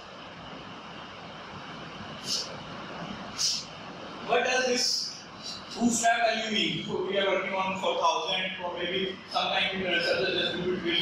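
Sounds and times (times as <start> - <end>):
room noise: 0.0 - 11.0
short high hiss: 2.2 - 2.6, 3.3 - 3.8.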